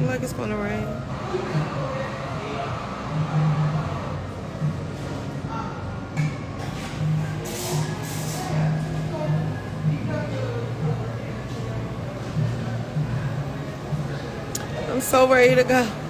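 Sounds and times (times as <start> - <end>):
background music with low bass: 0.0 - 16.0
faint indistinct voices: 0.0 - 16.0
brief hissing noises: 7.4 - 8.6.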